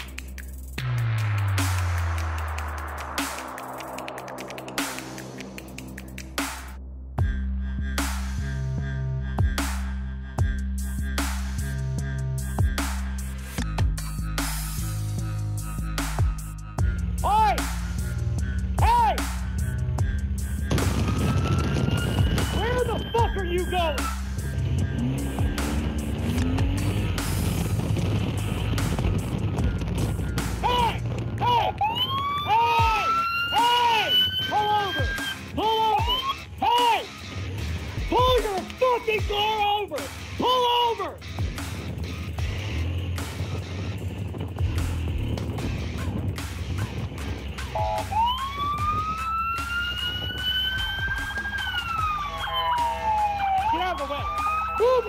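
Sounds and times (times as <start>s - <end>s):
motorcycle engine rumble: 19.5s - 32.4s
police siren wailing and whooping: 20.7s - 28.1s, 30.5s - 37.2s, 47.6s - 55.0s.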